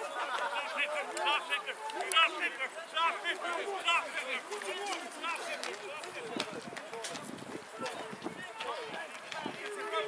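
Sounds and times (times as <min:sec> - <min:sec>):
voices shouting over one another: 0:00.0 - 0:05.6.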